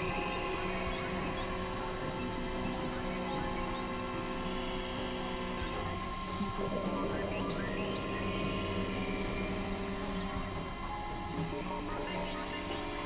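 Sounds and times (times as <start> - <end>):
electronic drone music: 0.0 - 13.0.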